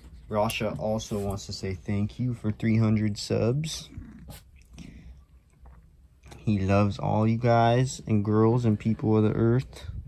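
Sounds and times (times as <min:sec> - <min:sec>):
cat purring: 0:03.6 - 0:04.7.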